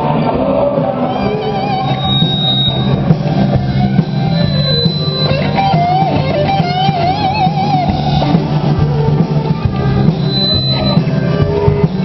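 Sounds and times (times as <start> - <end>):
bass guitar: 0.0 - 12.0
drums: 0.0 - 12.0
electric guitars: 0.0 - 12.0
wavering lead melody: 0.9 - 12.0.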